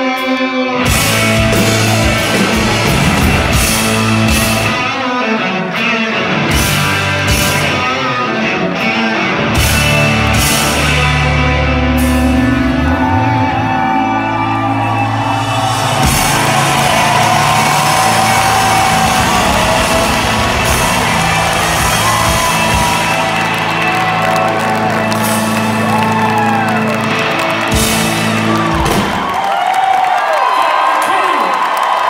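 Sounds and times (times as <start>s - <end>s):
live rock band chord: 0.1s - 29.1s
crowd whooping and cheering: 1.1s - 4.9s, 10.1s - 32.0s
drum and cymbal crashes: 15.6s - 22.9s.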